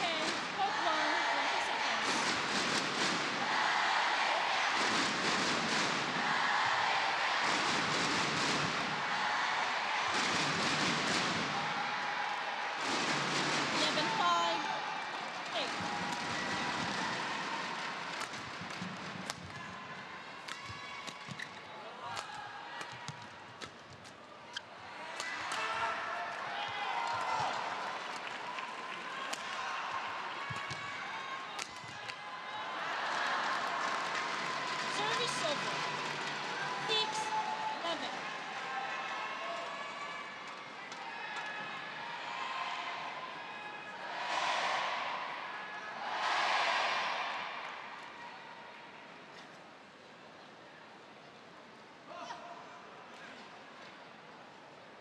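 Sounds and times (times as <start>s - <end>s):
crowd murmur: 0.0s - 2.3s.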